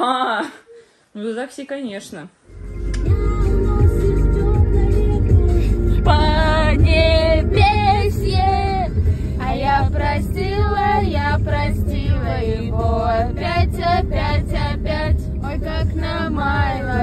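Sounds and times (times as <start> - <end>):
song playing in car: 2.5 - 17.0
young women singing along: 3.0 - 17.0.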